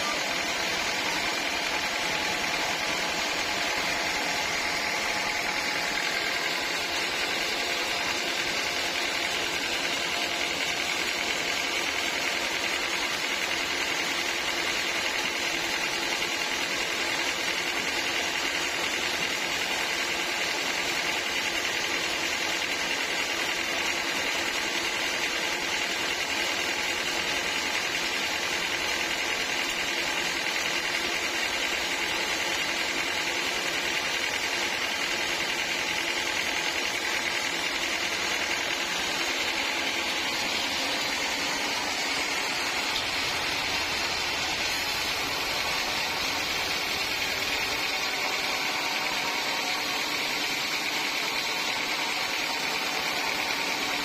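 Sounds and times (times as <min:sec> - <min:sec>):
band sawmill running: 0:00.0 - 0:54.0.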